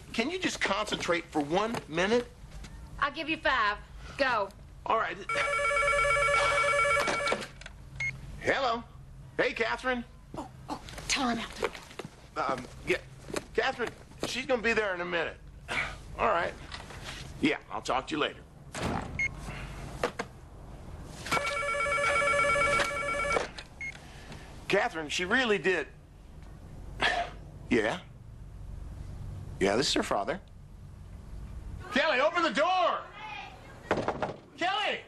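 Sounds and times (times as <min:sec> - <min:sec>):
telephone ringing: 0:05.3 - 0:07.6, 0:21.3 - 0:23.6.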